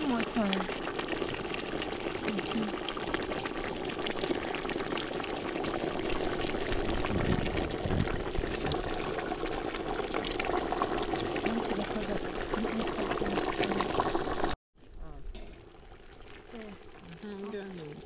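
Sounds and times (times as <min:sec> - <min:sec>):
stew bubbling and popping: 0:00.0 - 0:18.0.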